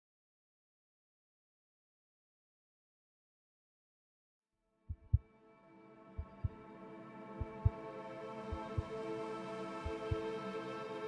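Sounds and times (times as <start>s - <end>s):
heartbeat thumps: 4.9s - 5.2s, 6.2s - 6.6s, 7.4s - 7.8s, 8.5s - 8.9s, 9.8s - 10.2s.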